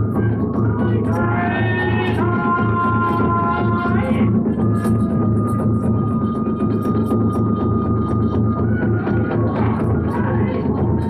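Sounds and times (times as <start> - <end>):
bamboo flute long high note: 0.0 - 6.9
big drum beating fast rhythm: 0.0 - 11.0.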